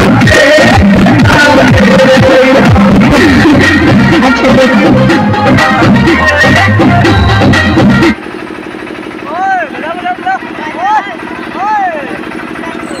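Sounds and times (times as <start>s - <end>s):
loud dance music: 0.0s - 8.2s
engine chugging: 0.0s - 13.0s.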